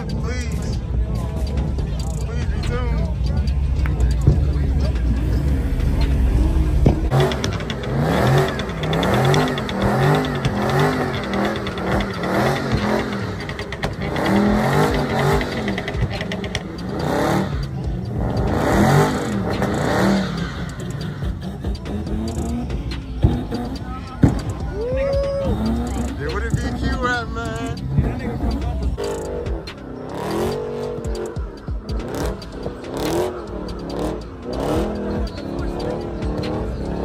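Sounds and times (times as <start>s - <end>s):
car engine revving hard: 0.0s - 24.7s, 25.4s - 37.0s
heavy low rumble: 0.0s - 30.0s.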